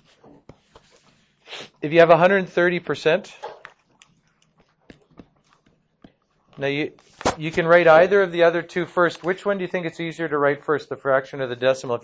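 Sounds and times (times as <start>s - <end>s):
stylus tapping tablet screen: 3.5s - 8.0s.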